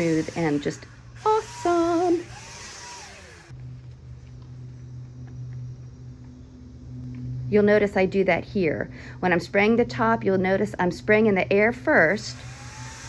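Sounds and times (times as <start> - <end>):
paint sprayer motor hum: 0.0 - 7.3, 12.2 - 13.0.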